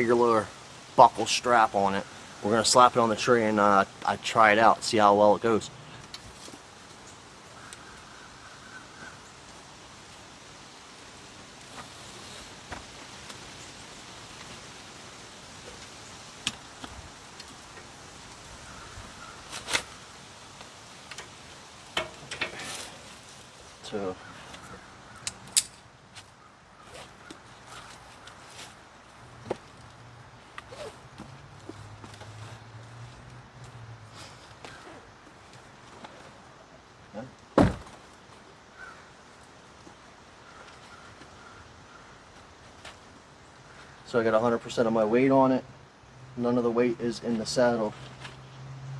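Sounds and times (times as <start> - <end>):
outdoor hiss: 0.0 - 48.9
metal clicks knocks and clanks: 22.0 - 22.6.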